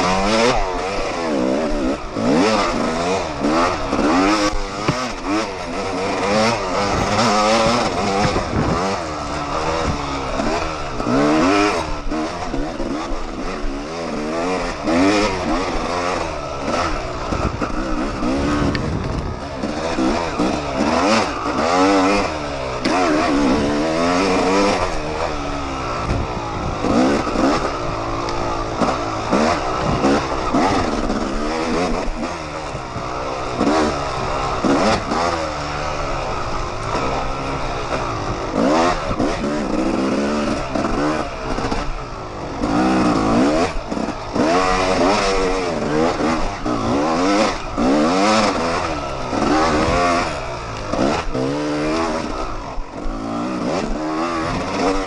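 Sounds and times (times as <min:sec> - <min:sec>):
chassis rattling over bumps: 0:00.0 - 0:55.0
dirt bike engine revving: 0:00.0 - 0:55.0.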